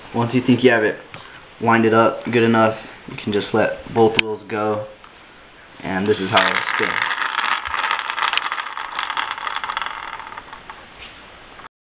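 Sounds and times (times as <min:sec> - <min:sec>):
toy car wheels rattling whir: 0:06.1 - 0:10.8.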